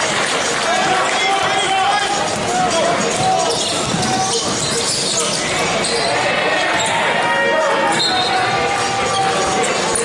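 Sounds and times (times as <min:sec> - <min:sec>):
players moving on hardwood court: 0:00.0 - 0:10.0
voices calling out: 0:00.0 - 0:10.0.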